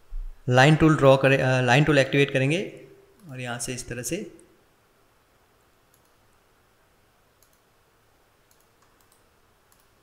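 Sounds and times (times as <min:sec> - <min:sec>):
computer mouse clicks: 0:05.9 - 0:06.2, 0:07.4 - 0:07.7, 0:08.4 - 0:10.0.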